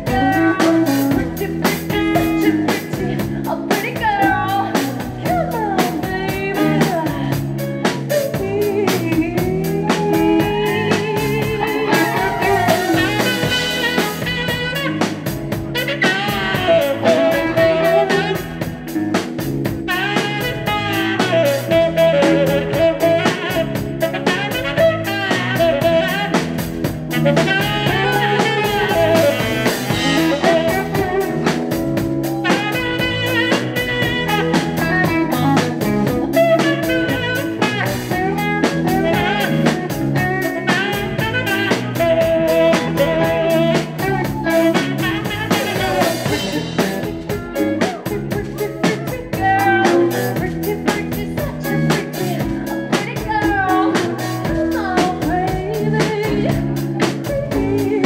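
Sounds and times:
rock band playing: 0.0s - 58.0s
tenor saxophone solo: 0.0s - 58.0s.

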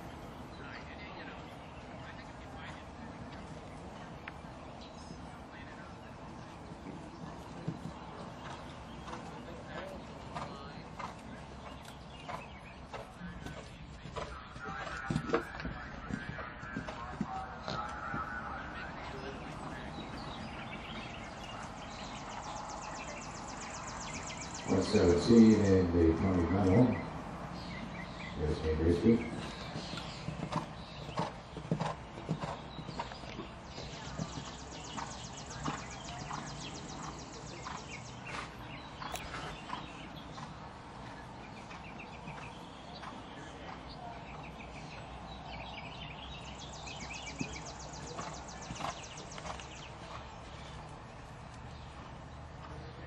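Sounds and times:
horse hoofbeats on sand: 6.3s - 40.6s, 41.4s - 52.8s.

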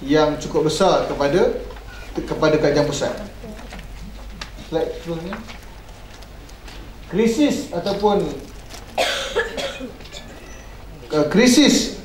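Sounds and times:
man coughing: 9.0s - 10.3s.

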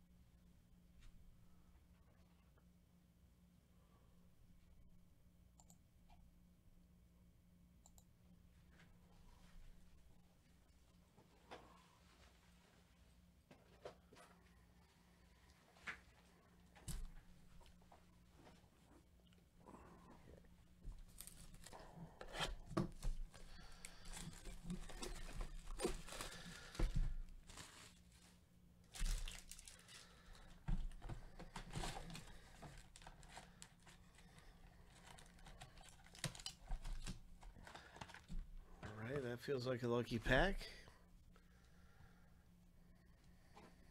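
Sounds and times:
foil wrappers tearing and crinkling: 21.1s - 21.8s, 23.9s - 28.3s, 28.9s - 30.3s.

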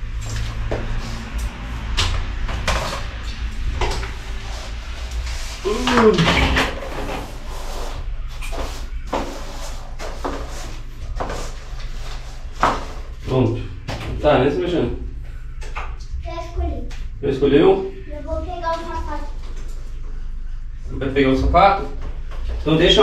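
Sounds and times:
steady low hum: 0.0s - 23.0s
broom sweeping a floor: 6.9s - 13.2s.

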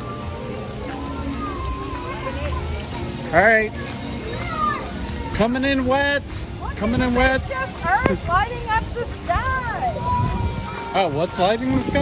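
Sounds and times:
heavy rain pouring: 0.0s - 12.0s
music playing: 0.0s - 12.0s.

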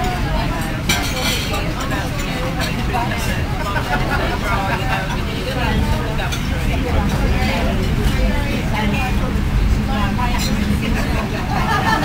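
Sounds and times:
indistinct passenger conversation: 0.0s - 12.0s
train rumbling: 2.8s - 12.0s.

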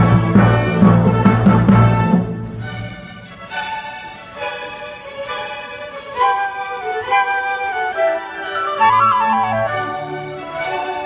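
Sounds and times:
orchestra playing classical music: 0.0s - 11.0s
violins sustained notes: 0.0s - 11.0s.

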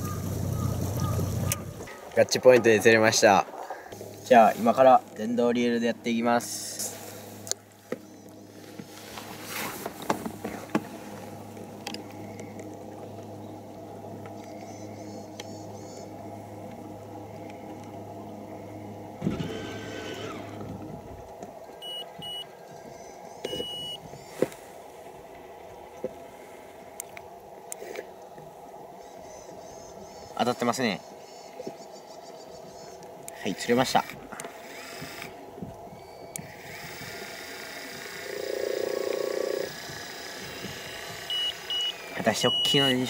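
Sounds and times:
electric hum with low drone: 0.0s - 43.0s
short high electronic beeps: 21.8s - 22.4s, 23.4s - 24.0s.

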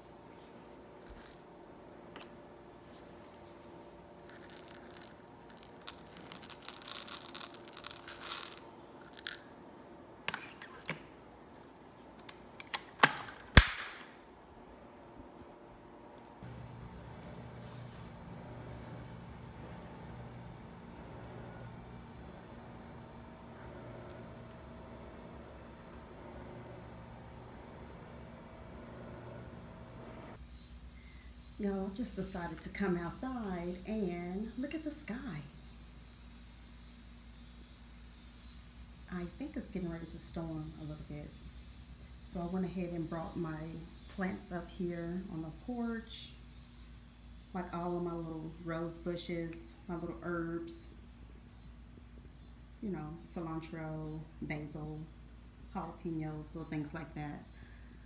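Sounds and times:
sharp plastic click: 12.6s - 14.2s
steady low hum: 14.1s - 58.0s.

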